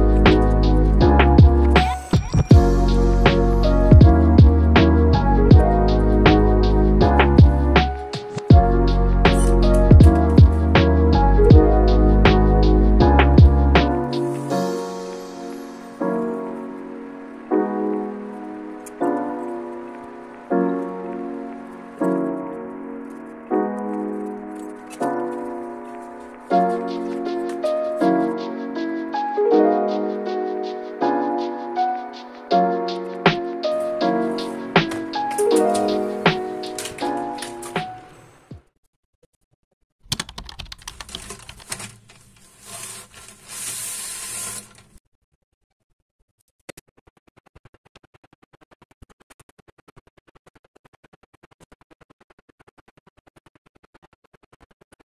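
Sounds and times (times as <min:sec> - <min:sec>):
soft keyboard chords: 0:00.0 - 0:38.4
paper crinkling and rustling: 0:40.8 - 0:45.0.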